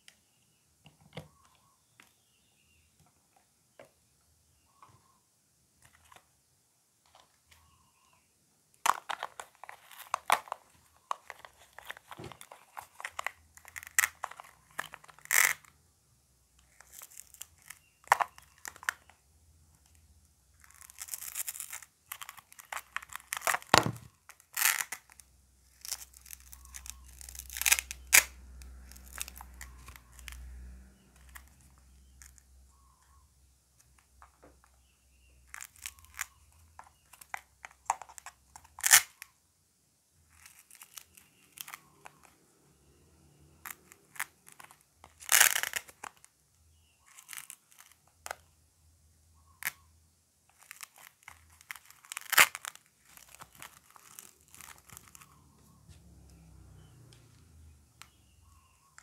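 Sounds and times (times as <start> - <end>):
velcro tearing: 11.2 - 15.7, 20.6 - 30.5, 37.2 - 39.3, 43.6 - 46.3, 47.1 - 48.4, 50.5 - 55.4
plastic clicks and knocks: 23.6 - 24.1.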